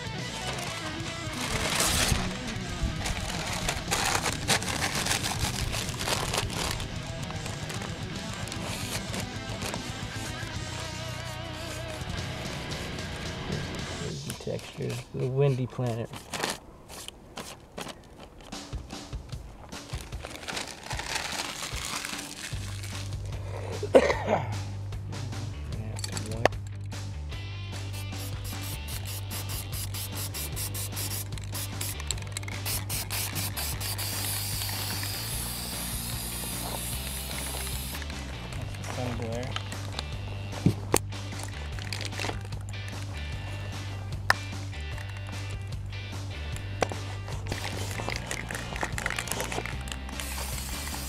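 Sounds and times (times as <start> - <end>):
background music: 0.0 - 15.4, 18.4 - 51.0
newspaper crinkling: 0.3 - 12.8, 14.1 - 18.7, 19.6 - 23.3, 28.2 - 40.1, 41.3 - 43.2, 47.0 - 51.0
spray paint can hissing: 10.0 - 13.0, 27.8 - 38.3, 47.4 - 51.0.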